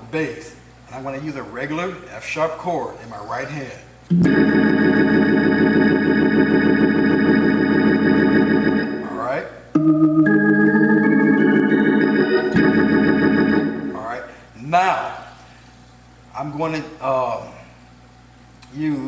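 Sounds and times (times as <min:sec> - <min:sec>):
organ holding chords: 0:04.1 - 0:14.3.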